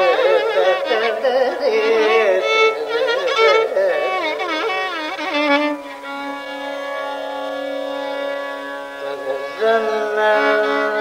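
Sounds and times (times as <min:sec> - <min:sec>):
long held note: 0:01.7 - 0:11.0.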